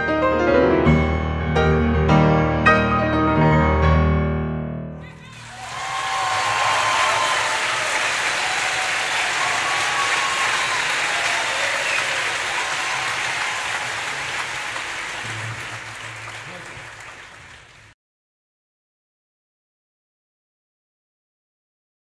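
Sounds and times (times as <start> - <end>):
audience shouts: 5.0 - 17.3
audience applause: 5.0 - 18.0.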